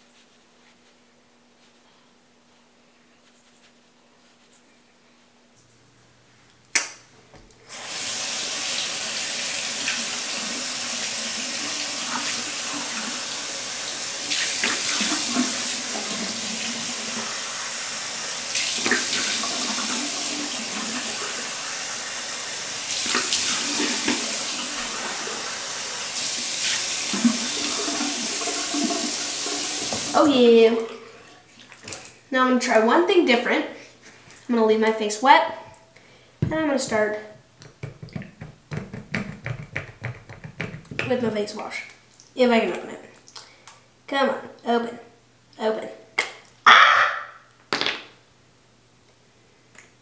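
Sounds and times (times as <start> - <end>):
tap water running: 7.7 - 32.9, 36.4 - 41.4.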